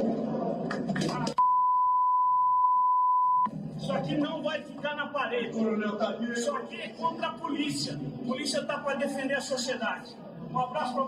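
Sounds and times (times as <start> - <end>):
censor bleep: 1.4 - 3.5
man speaking: 3.8 - 11.0.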